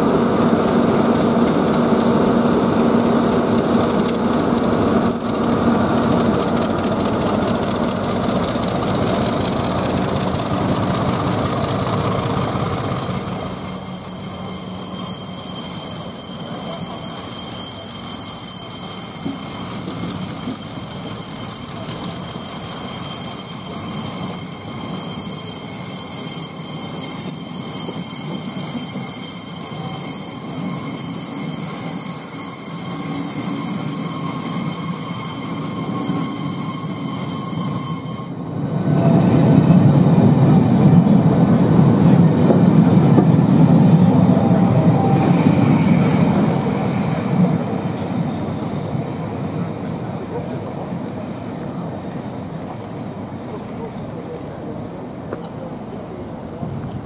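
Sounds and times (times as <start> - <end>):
diesel locomotive rumbling: 0.0 - 57.0
high-pitched wheel squeal: 2.7 - 38.6, 42.0 - 49.5.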